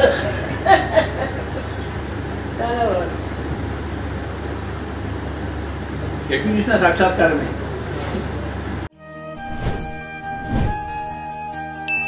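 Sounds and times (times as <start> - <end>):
low hum: 9.4 - 11.2.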